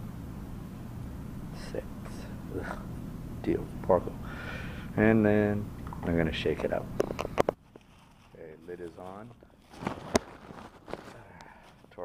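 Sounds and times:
bottle handling rustle: 6.6s - 12.0s.

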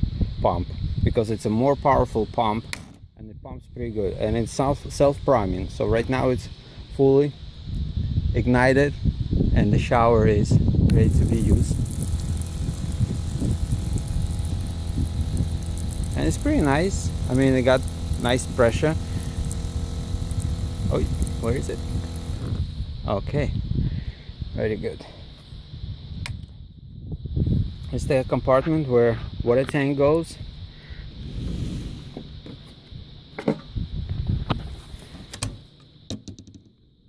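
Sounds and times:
shower pump humming: 9.7s - 22.9s
water spraying from shower head: 10.9s - 22.8s.

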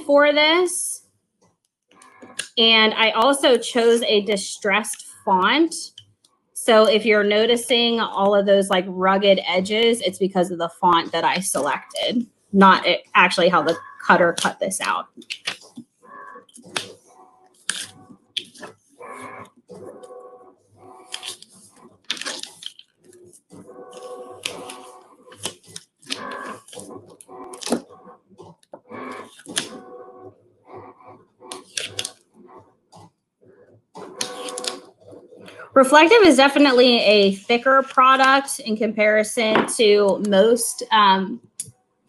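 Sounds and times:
vinyl peeling and crackling: 15.1s - 35.5s.

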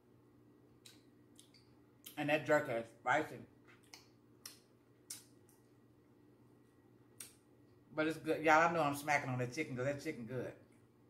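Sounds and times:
quiet room hum: 0.0s - 11.0s
wet mouth smacks chewing: 0.8s - 2.2s.

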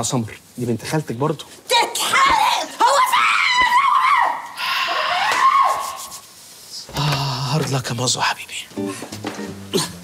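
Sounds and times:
woman screaming: 2.0s - 6.0s.

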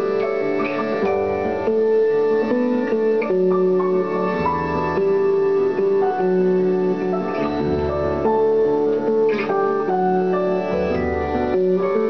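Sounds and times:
acoustic guitar: 0.0s - 12.0s
keyboard chords: 0.0s - 12.0s.

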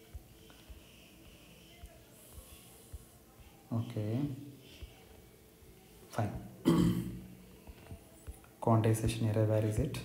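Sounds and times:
man clearing his throat: 6.6s - 7.2s.

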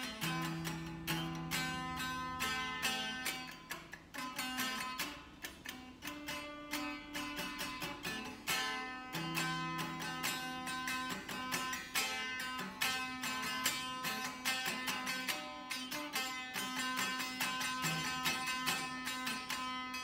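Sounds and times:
electric guitar picking: 0.0s - 20.0s.

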